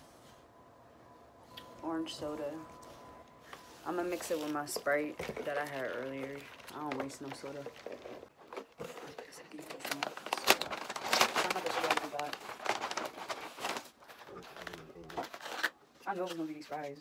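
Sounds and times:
paper bag rustling: 0:02.7 - 0:16.8.

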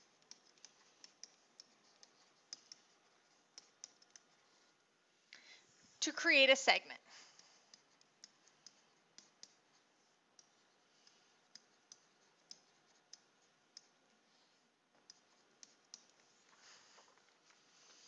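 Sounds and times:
stylus tapping on a tablet: 0:00.0 - 0:04.4, 0:07.3 - 0:14.0, 0:15.0 - 0:16.3.

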